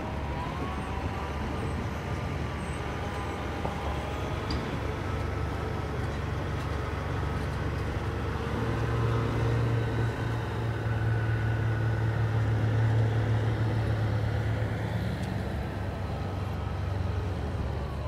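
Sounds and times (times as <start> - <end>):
diesel engine humming: 0.0 - 18.0.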